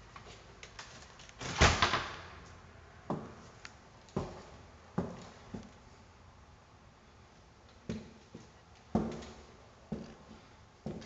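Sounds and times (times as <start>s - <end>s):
front door thudding: 1.4s - 2.3s.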